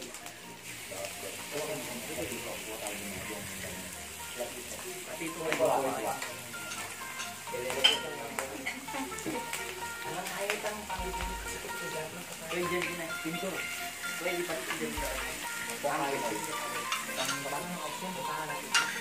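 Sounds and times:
meat sizzling on a grill pan: 0:00.0 - 0:19.0
metal tongs clacking on a pan: 0:05.5 - 0:10.8, 0:16.2 - 0:19.0.

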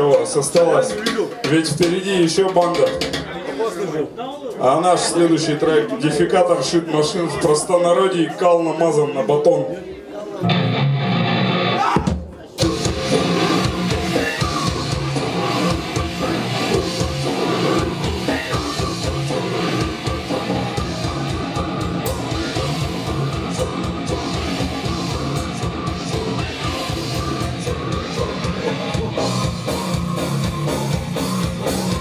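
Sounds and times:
fast drumming: 0:00.0 - 0:03.4, 0:12.0 - 0:32.0
distorted electric guitar: 0:10.4 - 0:11.9, 0:12.6 - 0:32.0.

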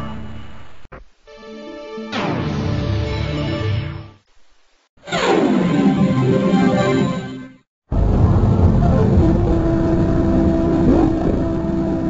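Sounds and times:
distorted rumbling drone: 0:07.9 - 0:12.0.

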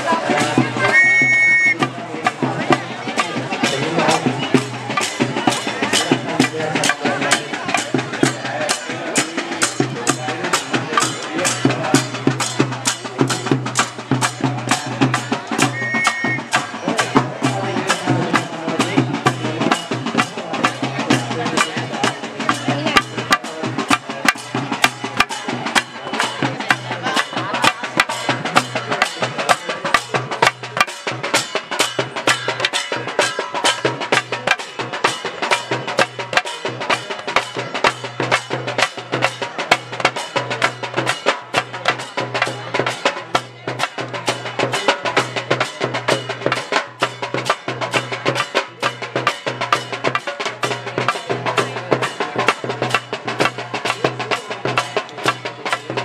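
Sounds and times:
drum and stick strikes: 0:00.0 - 0:56.0.

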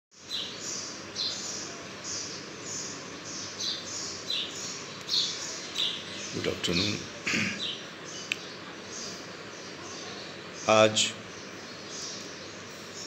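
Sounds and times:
bird chirping: 0:00.1 - 0:13.0
steady background hiss: 0:00.2 - 0:13.0.

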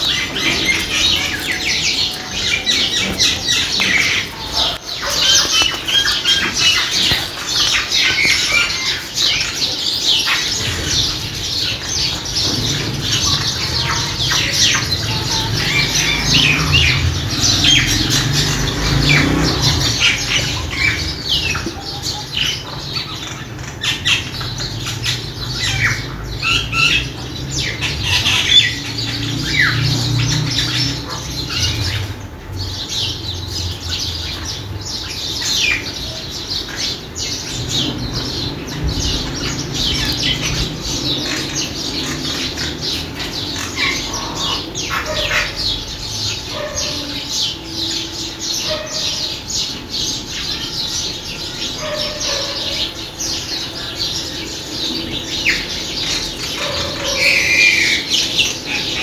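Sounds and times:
bird chirps and squawks: 0:00.0 - 0:32.2, 0:34.0 - 0:59.0.

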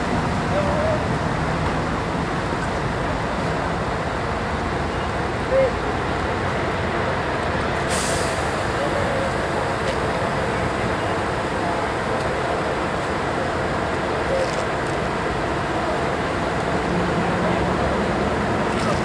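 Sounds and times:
diesel buses idling: 0:00.0 - 0:19.0
compressed air hiss: 0:07.9 - 0:08.7.

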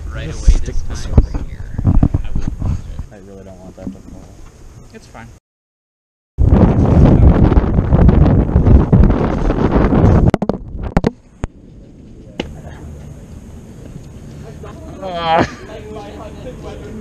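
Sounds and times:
wind buffeting microphone: 0:00.0 - 0:04.4, 0:06.4 - 0:13.9
outdoor background: 0:00.0 - 0:05.4, 0:06.4 - 0:17.0.

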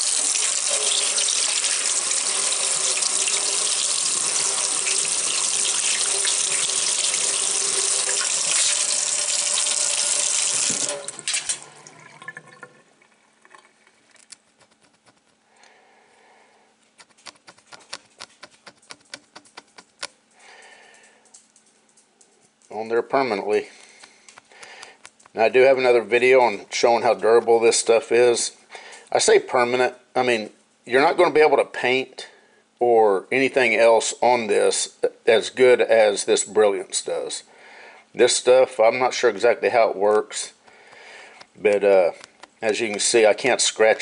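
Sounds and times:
tap water running into metal sink: 0:00.0 - 0:12.8.

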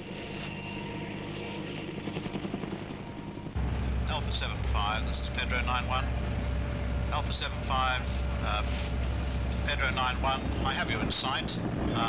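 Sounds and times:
helicopter flying overhead: 0:00.0 - 0:12.0.

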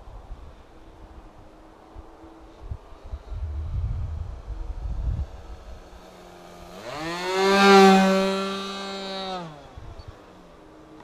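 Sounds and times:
propeller plane engine buzzing: 0:01.5 - 0:11.0
wind buffeting microphone: 0:02.0 - 0:06.0.

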